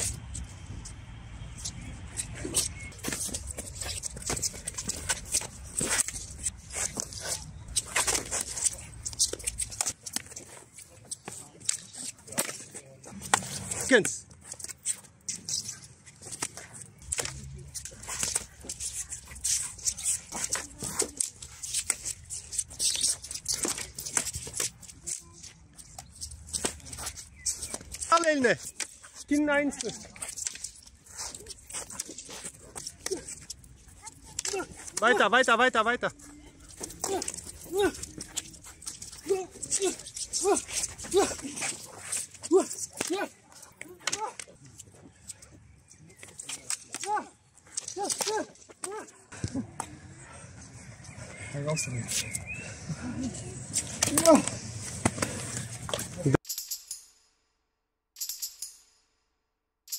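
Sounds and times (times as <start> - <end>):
footwork on rubber track: 0.0 - 35.4, 36.0 - 56.4
sword and stick clacking: 14.5 - 35.2, 36.7 - 44.6, 46.2 - 49.1, 53.8 - 57.2.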